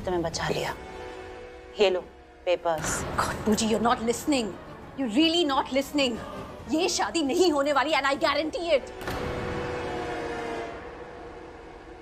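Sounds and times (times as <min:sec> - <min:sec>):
held horn-like chord: 0:00.0 - 0:05.2, 0:08.6 - 0:12.0.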